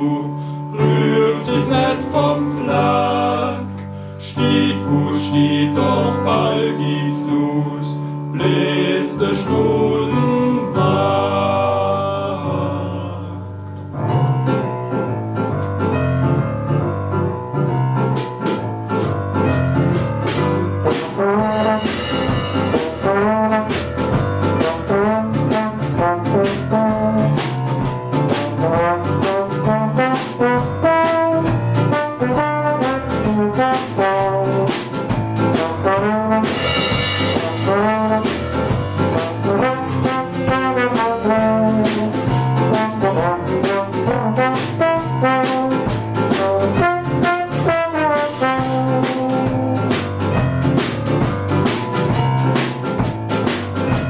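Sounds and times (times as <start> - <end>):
electric keyboard piano: 0.0 - 54.0
drum kit: 14.2 - 54.0
trombone lead line: 18.0 - 54.0
cymbal crash: 36.6 - 38.5.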